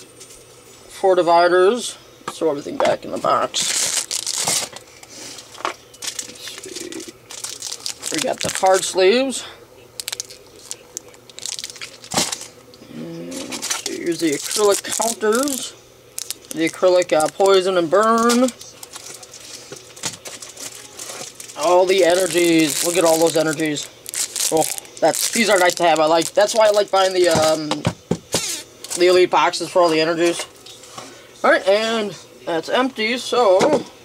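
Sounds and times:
cardboard packaging rustling: 3.5 - 4.8, 5.4 - 9.0, 10.0 - 12.6, 13.5 - 27.6.

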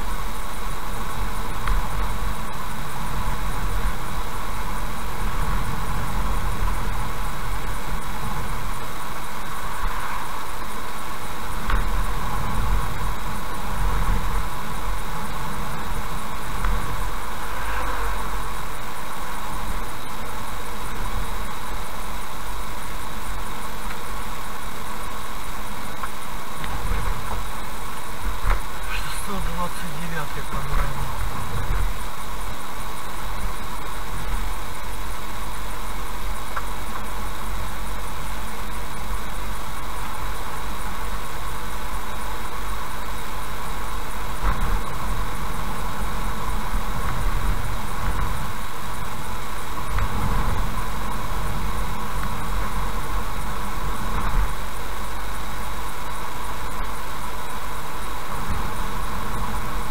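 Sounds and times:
car engine running: 0.0 - 59.9
tyre and road rumble: 0.0 - 59.9.

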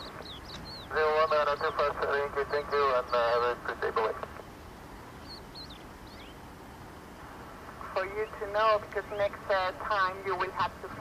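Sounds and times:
high bird chirps: 0.0 - 0.9, 5.1 - 6.4
steady background hiss: 0.0 - 11.0.

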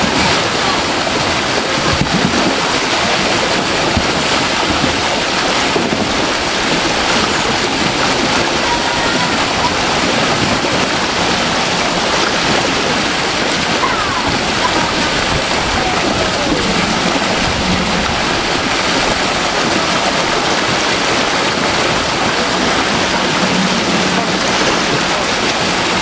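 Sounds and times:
water rushing over a weir: 0.0 - 26.0.

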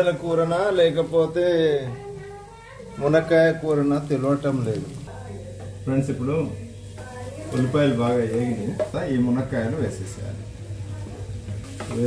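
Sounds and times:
onions frying in oil: 0.0 - 12.0.

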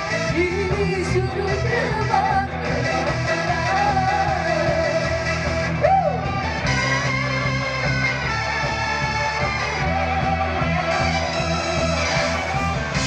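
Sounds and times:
live band playing loud music: 0.0 - 13.0.

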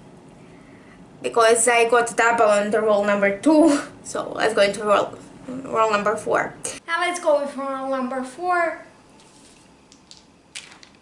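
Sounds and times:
dice clattering on a board: 9.9 - 11.0.

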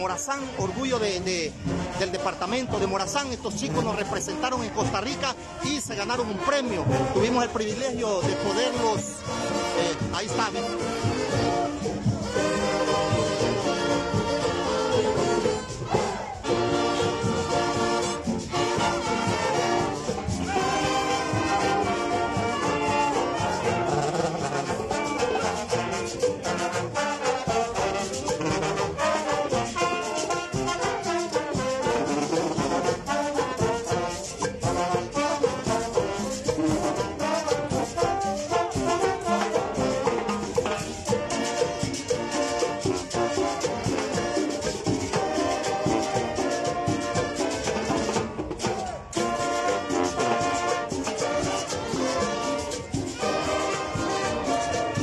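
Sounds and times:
marching band playing: 0.0 - 55.0.

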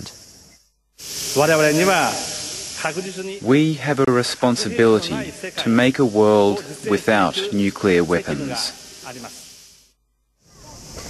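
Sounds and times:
steady high hiss: 0.0 - 11.0
person speaking: 1.2 - 9.5.

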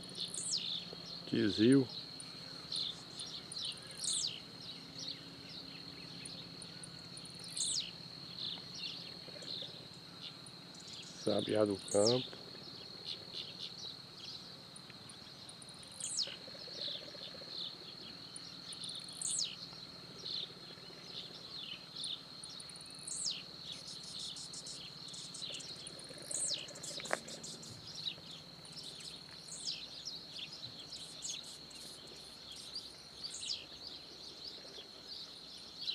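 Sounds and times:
high-pitched insect drone: 0.0 - 33.8.

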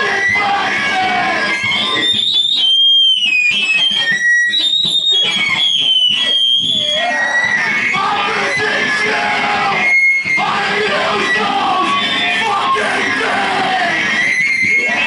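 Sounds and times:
screamed vocals: 0.0 - 2.2, 6.2 - 15.0
harsh distorted electronic noise: 0.0 - 15.0
shrill feedback tones: 0.0 - 15.0.

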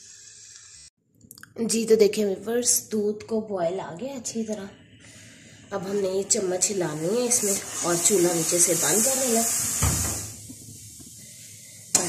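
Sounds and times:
gas burner hissing: 0.0 - 0.9, 5.0 - 12.0.

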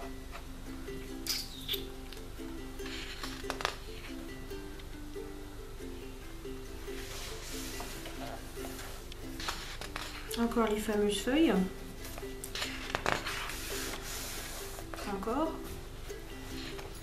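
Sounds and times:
plucked-string background music: 0.0 - 17.0
book page turning: 7.0 - 10.4, 12.0 - 15.1.

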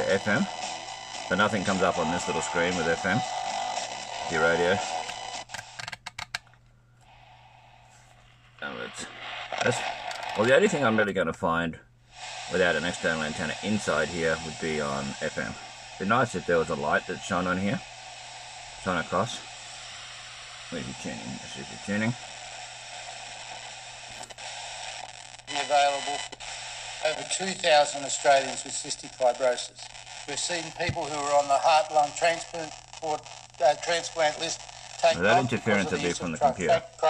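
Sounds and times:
radio static hiss: 0.0 - 6.0, 7.1 - 11.2, 12.1 - 37.0
radio crackle: 0.0 - 11.2, 12.1 - 37.0.

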